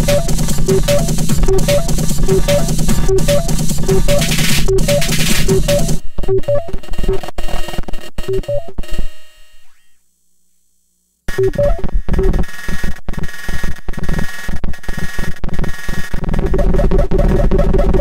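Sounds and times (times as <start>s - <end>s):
repeating pitched synth: 0.0s - 7.2s, 16.5s - 18.0s
glitchy electronic drums: 0.0s - 8.9s, 11.3s - 18.0s.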